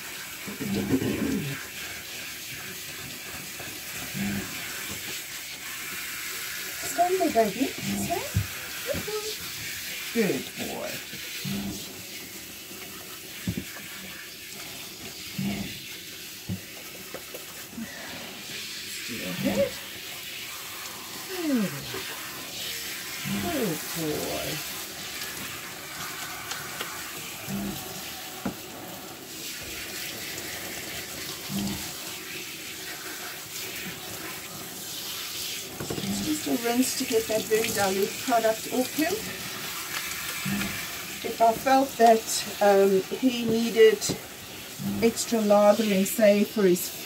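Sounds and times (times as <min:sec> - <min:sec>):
shower spray water hissing: 0:00.0 - 0:47.0
water splashing into tub: 0:00.0 - 0:47.0.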